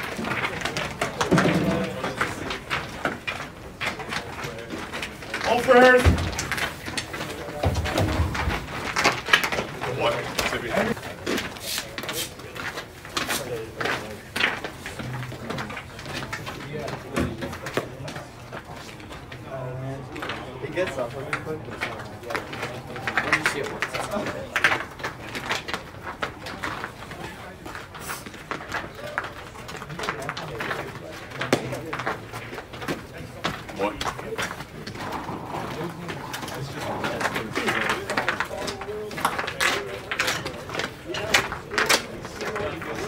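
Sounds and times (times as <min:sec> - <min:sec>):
indistinct voices: 0:00.0 - 0:43.0.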